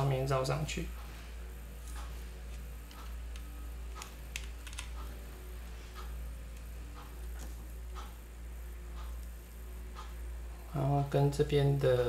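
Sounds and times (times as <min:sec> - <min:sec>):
steady low hum: 0:00.0 - 0:12.0
wires clicking on plastic: 0:01.9 - 0:05.2, 0:06.0 - 0:08.2.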